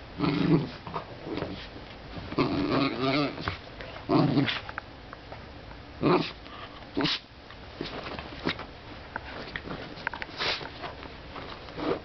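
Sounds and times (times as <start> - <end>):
dog grumbling: 0.2 - 1.4, 2.3 - 4.6, 6.0 - 6.4.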